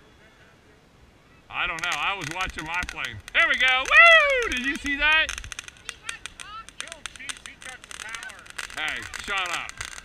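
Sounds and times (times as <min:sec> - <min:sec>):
firework fountain crackling: 0:01.5 - 0:10.0.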